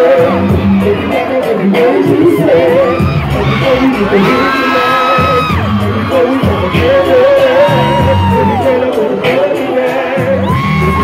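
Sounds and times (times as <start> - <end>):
live r and b band music: 0.0 - 11.0
audience whooping and screaming: 0.1 - 9.3, 10.2 - 11.0.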